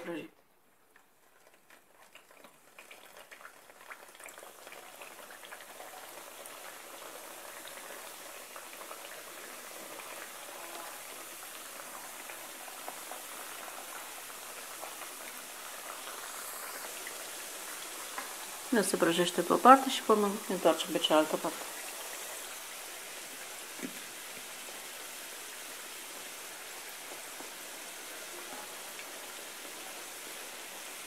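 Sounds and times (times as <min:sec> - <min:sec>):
food sizzling in hot oil: 0:01.4 - 0:31.0.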